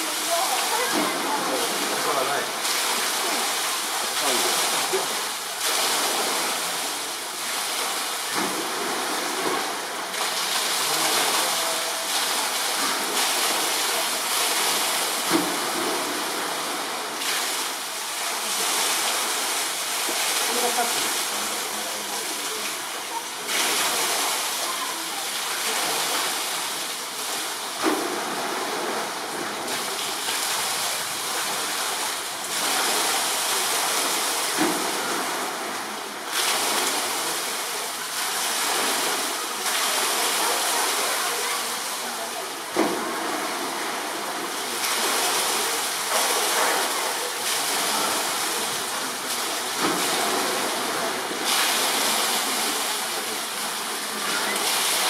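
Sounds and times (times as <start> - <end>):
low background voices: 0.0 - 55.0
running water rushing: 0.0 - 55.0.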